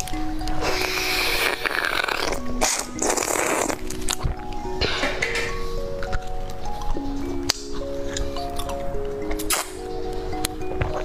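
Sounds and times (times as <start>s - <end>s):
slurping through a straw: 0.6s - 3.9s.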